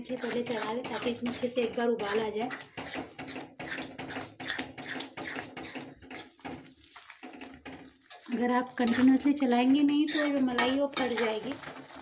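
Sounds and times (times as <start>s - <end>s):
metal spoon stirring thick curry: 0.0s - 12.0s.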